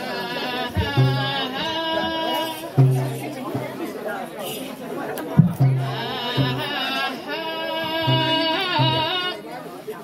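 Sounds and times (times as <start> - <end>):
chatter: 0.0 - 10.0
booming frame drums: 2.8 - 3.8, 5.4 - 6.7.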